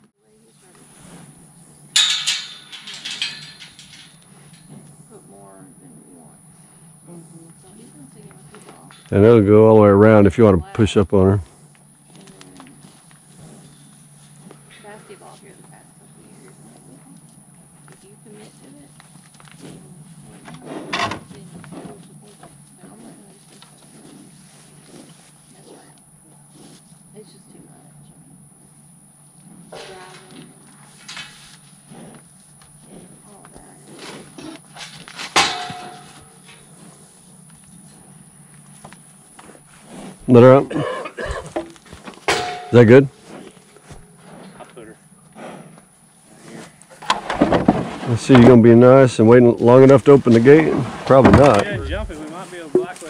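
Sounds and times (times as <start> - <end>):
cattle shuffling in pen: 0.4 - 5.1, 12.1 - 25.9, 29.8 - 44.8, 46.3 - 53.0
panels knocking and rattling: 2.0 - 4.7, 50.5 - 52.0.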